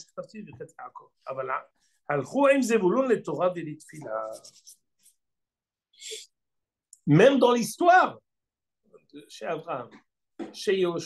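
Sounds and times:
man speaking: 0.0 - 4.6.

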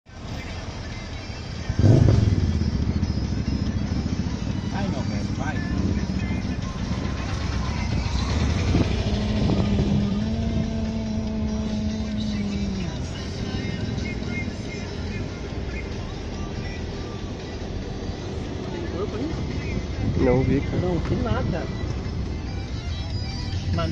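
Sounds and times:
car engine and road noise: 0.0 - 23.9.

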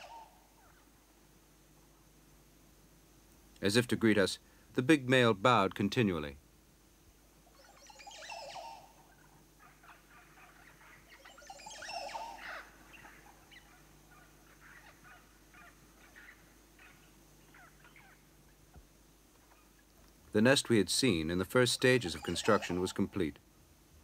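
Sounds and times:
loud bird calls: 0.0 - 0.9, 7.4 - 18.8, 21.8 - 23.2
short faint bird calls: 0.0 - 1.0, 7.4 - 20.0.

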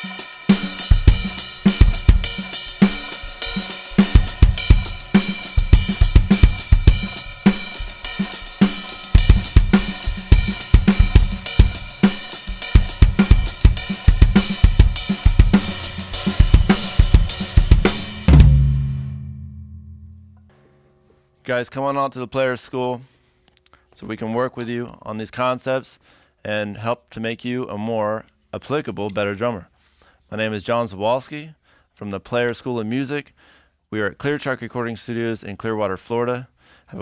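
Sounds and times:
funk drum kit groove: 0.0 - 19.8
drum final hit ringing: 0.0 - 20.8.

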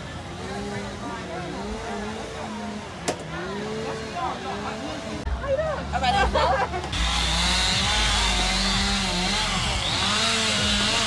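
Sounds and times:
indistinct voices chattering: 0.0 - 11.0.

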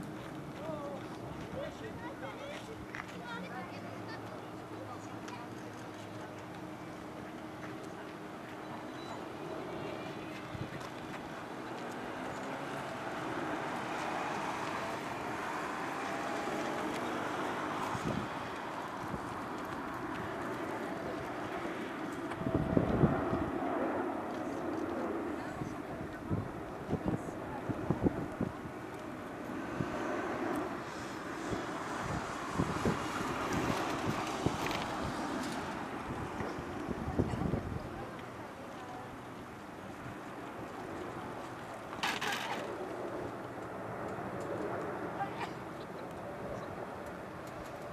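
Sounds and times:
jet airliner flying: 0.0 - 47.9
wind buffeting microphone: 12.9 - 41.6.

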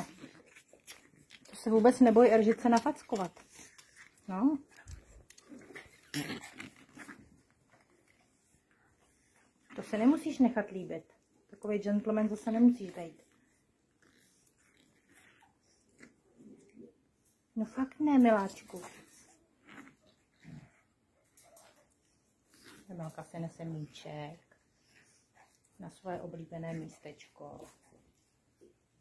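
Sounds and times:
puppy play growl: 0.0 - 10.2, 12.4 - 17.0, 17.7 - 28.3.

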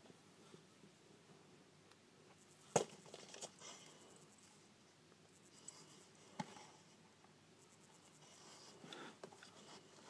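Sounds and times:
faint rustling of small things: 0.0 - 10.0.

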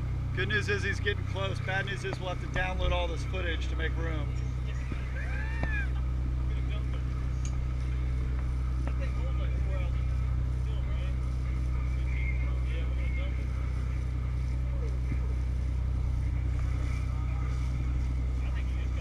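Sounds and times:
boat engines droning: 0.0 - 19.0.

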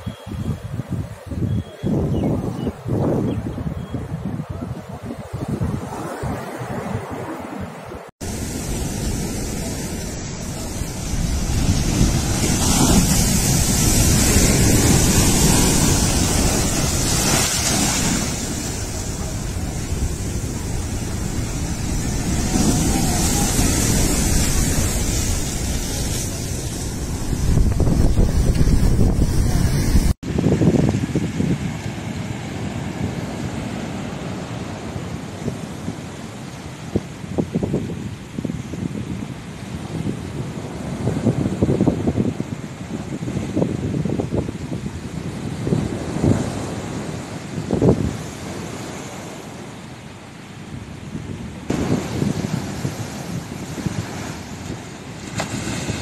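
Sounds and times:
wind buffeting microphone: 0.0 - 49.8, 50.4 - 56.0
surf crashing against sea wall: 8.2 - 37.4, 51.3 - 56.0.

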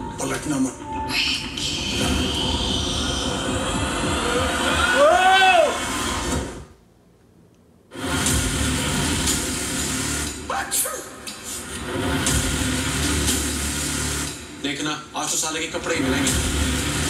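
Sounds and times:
low rumbling drone: 1.1 - 6.7, 8.0 - 10.5, 11.6 - 14.6
loud impact hit: 11.6 - 13.9.

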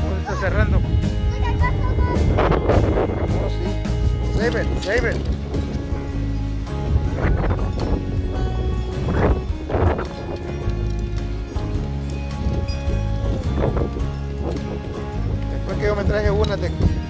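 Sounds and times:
electronic music with bass line: 0.0 - 15.9.

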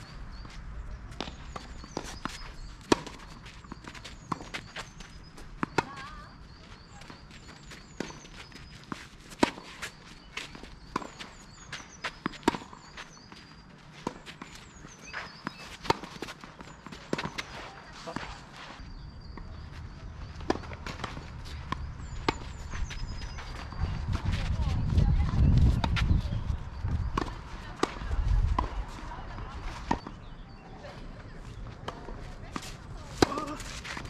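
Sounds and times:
footsteps on clay: 0.4 - 34.0
tennis ball bouncing: 1.1 - 4.8, 5.6 - 7.2, 12.0 - 12.9, 15.2 - 18.3, 19.3 - 24.2, 27.1 - 30.2, 31.8 - 34.0
racket striking tennis ball: 31.9 - 34.0.

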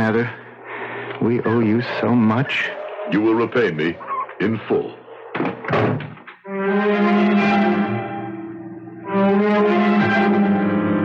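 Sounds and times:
brass-like music chord sting: 6.5 - 11.0.

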